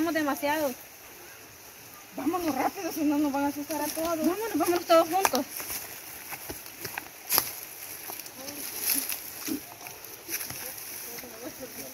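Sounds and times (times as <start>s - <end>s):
footsteps on dry leaves and stones: 3.4s - 11.9s
faint voices: 8.1s - 11.9s.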